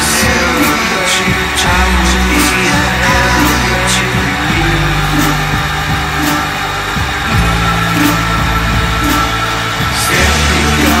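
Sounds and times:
droning guitar and bass: 0.0 - 11.0
drum hits: 0.0 - 11.0.

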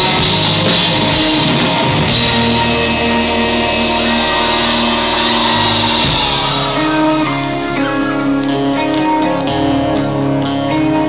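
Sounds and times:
distorted electric guitar chords: 0.0 - 11.0
drums: 0.0 - 11.0.

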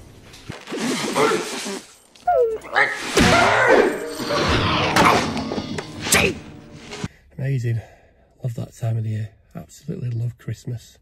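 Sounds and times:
film music: 2.6 - 7.1.

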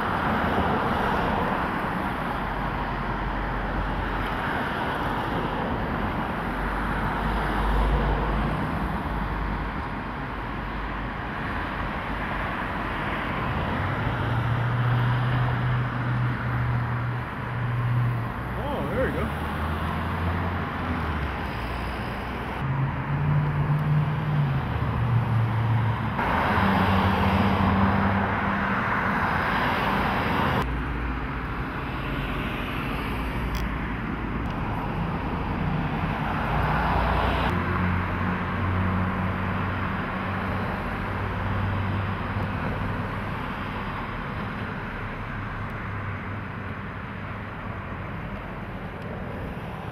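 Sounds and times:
passing vehicles: 0.0 - 49.9.

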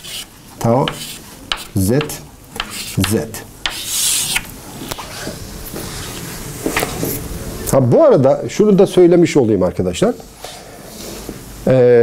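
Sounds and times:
chalk scratching on blackboard: 0.0 - 4.5.

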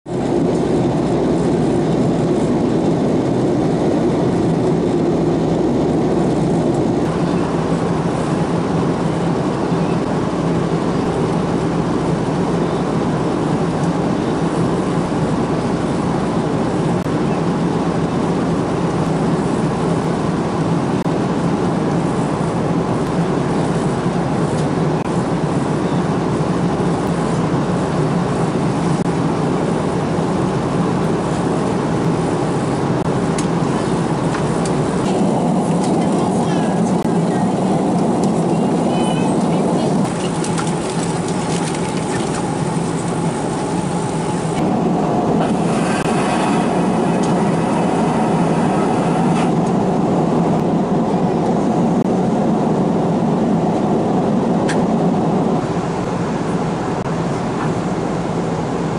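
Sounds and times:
jet engine drone and rushing air: 0.0 - 58.9.

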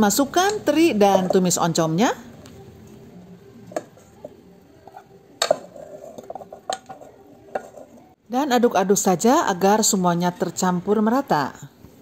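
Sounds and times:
wooden spatula scraping wok: 3.6 - 8.2
spatula knocking on pans: 4.8 - 7.9.

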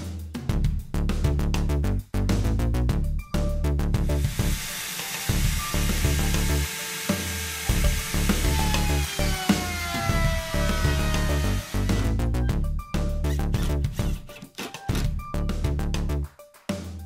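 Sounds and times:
background music with steady beat: 0.0 - 17.0
router cutting wood: 4.2 - 12.3.

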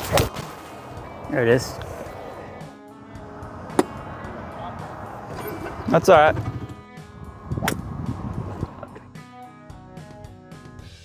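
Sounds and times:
background music: 0.0 - 11.0
golf club striking ball: 3.7 - 4.1, 7.5 - 8.2.

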